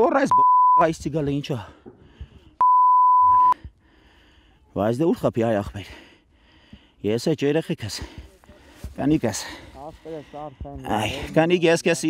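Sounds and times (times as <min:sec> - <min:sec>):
censor bleep: 0:00.3 - 0:00.9, 0:02.6 - 0:03.6
man speaking: 0:07.0 - 0:12.0.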